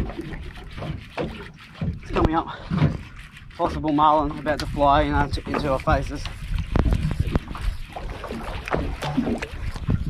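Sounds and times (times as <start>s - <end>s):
water slapping boat hull: 0.0s - 10.0s
water washing: 0.0s - 10.0s.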